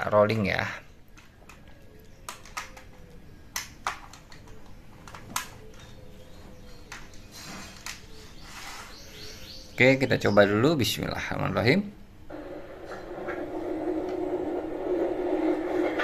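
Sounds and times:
plastic clicks and taps: 1.1 - 6.0.

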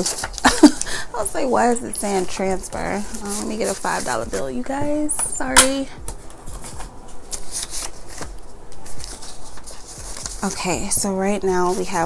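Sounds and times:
paper bills rustling: 0.0 - 12.0.

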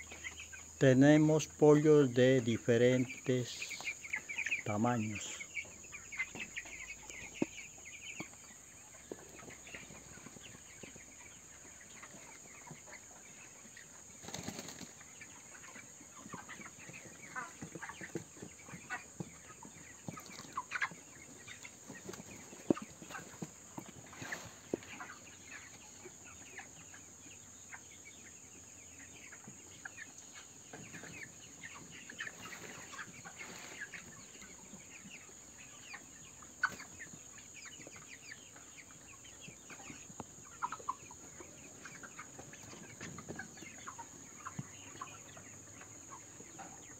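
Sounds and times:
chickens clucking: 0.0 - 46.9.

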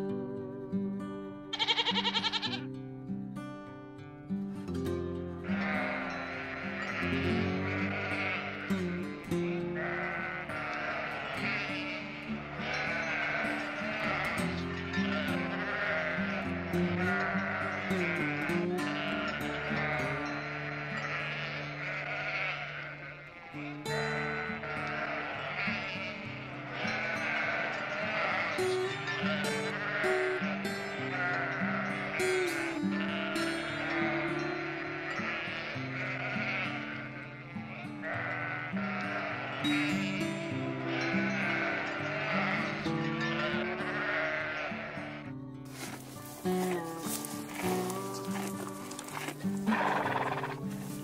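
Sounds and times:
slow background music: 0.0 - 51.0
sheep bleating: 1.5 - 2.8, 5.4 - 51.0.

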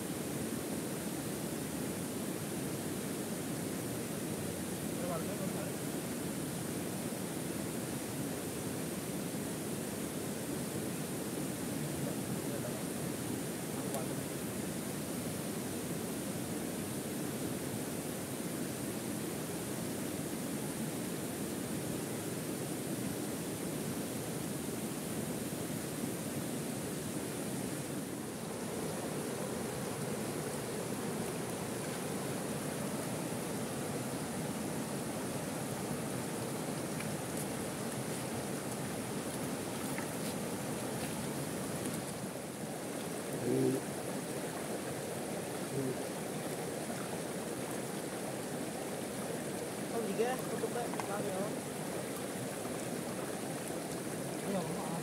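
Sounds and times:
river water rushing: 0.0 - 55.0.

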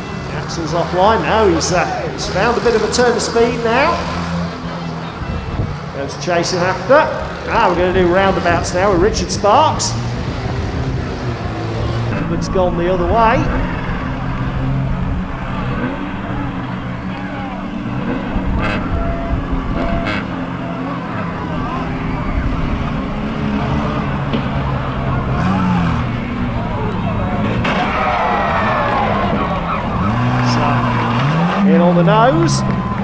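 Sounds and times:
race car engines revving: 0.0 - 33.0.

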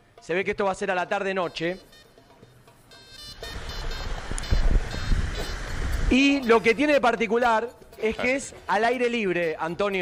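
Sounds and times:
wind buffeting microphone: 4.1 - 6.2.

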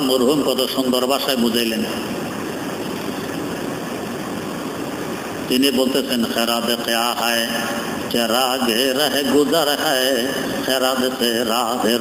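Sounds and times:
machine-like hum: 0.0 - 12.0.

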